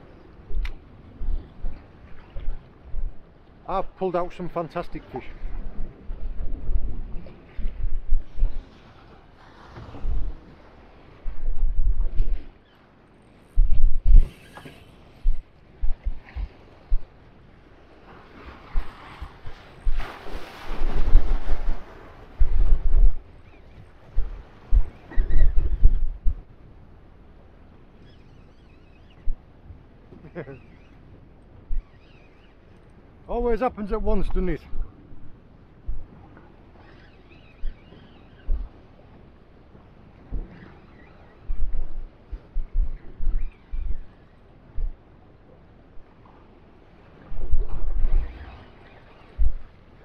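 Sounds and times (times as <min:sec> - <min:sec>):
wind gusting over microphone: 0:00.0 - 0:12.6, 0:13.4 - 0:27.9, 0:33.3 - 0:50.0
choppy sea washing: 0:00.0 - 0:50.0.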